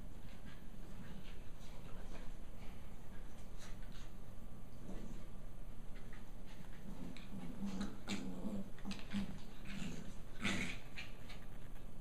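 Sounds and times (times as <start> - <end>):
dogs growling in play: 3.6 - 11.6.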